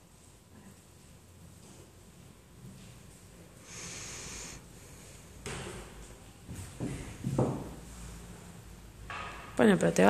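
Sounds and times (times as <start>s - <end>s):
person exhaling through nose: 3.6s - 4.7s.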